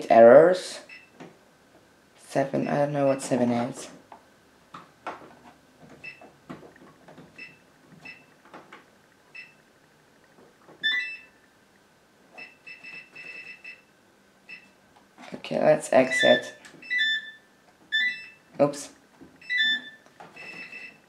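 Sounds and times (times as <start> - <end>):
washing machine control panel beeping: 0.9 - 1.2, 6.0 - 6.4, 7.3 - 8.4, 9.3 - 9.6, 10.8 - 11.4, 12.4 - 13.9, 16.1 - 18.5, 19.4 - 21.0.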